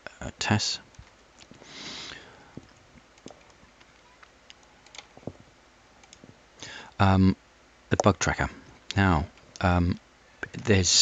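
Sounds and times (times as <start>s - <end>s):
soft breath: 1.6s - 2.7s, 6.6s - 7.0s
computer mouse clicks: 6.0s - 6.2s.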